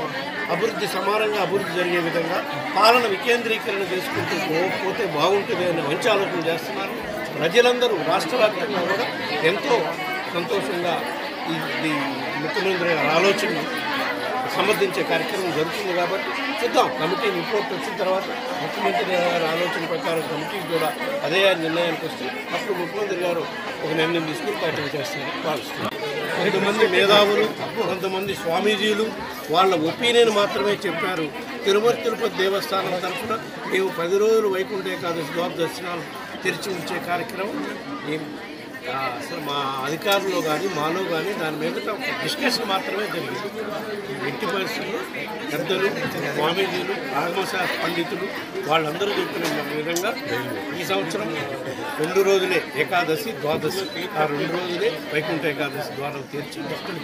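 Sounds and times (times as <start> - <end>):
people chattering: 0.0 - 57.0.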